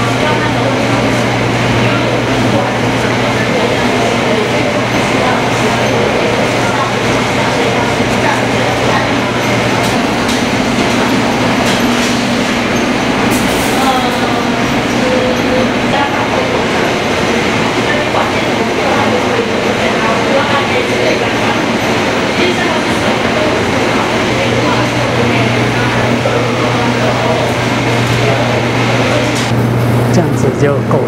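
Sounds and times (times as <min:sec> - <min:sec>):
machinery rumble and clatter: 0:00.0 - 0:31.0.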